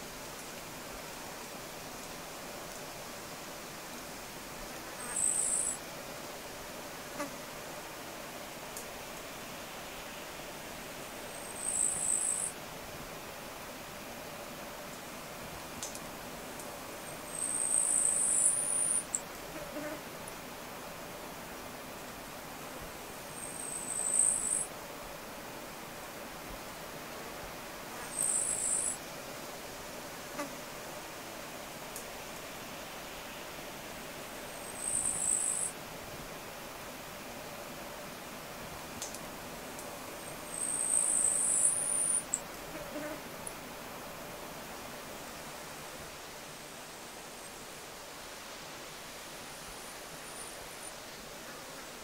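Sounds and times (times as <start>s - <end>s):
steady outdoor hiss: 0.0s - 52.0s
buzzing insect chirp: 4.7s - 5.9s, 11.3s - 12.6s, 17.1s - 20.0s, 23.3s - 24.7s, 27.9s - 29.1s, 34.5s - 35.8s, 40.2s - 43.2s
faint click: 15.8s - 16.7s, 39.0s - 39.9s
faint ticks: 15.8s - 16.7s, 39.0s - 39.9s.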